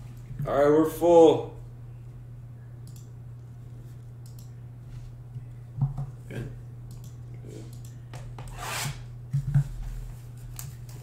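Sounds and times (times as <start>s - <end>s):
steady low hum: 0.0s - 11.0s
rubbing scrape on cardboard: 8.6s - 9.0s.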